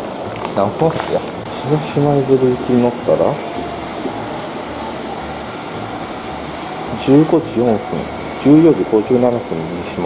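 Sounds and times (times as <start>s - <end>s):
low rumbling hum: 1.0s - 9.9s.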